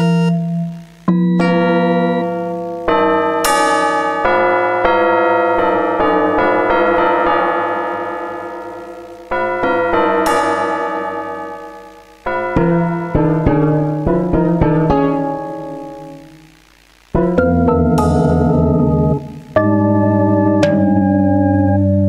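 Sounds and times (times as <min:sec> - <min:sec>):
atonal synthesizer notes: 0:00.0 - 0:16.5, 0:17.2 - 0:22.0.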